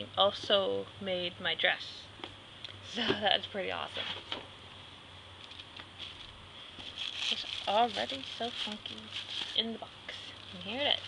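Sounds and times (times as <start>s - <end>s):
steady low hum: 0.0s - 11.0s
tissue paper rustling: 6.0s - 11.0s.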